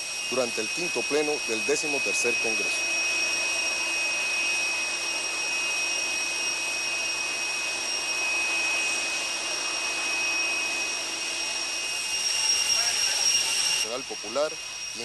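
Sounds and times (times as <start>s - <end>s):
jet engine rushing noise: 0.0s - 15.0s
jet turbine whine: 0.0s - 15.0s.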